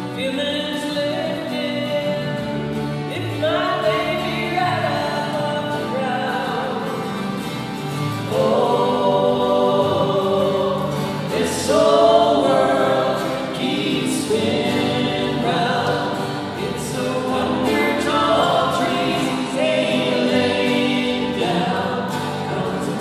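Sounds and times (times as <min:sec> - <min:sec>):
electric guitar: 0:00.0 - 0:23.0
several voices singing folk song: 0:00.0 - 0:23.0
strummed acoustic guitars: 0:00.0 - 0:23.0.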